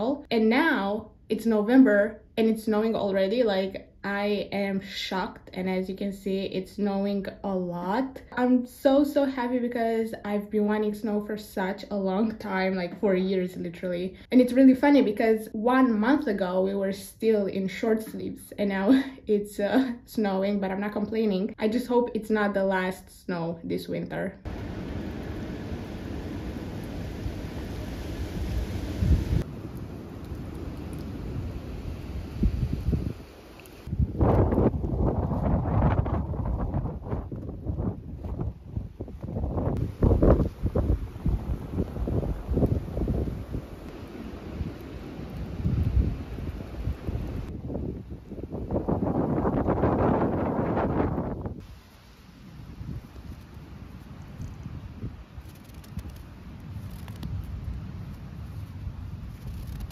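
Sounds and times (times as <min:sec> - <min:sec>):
wind blowing across microphone: 0:24.4 - 0:59.9.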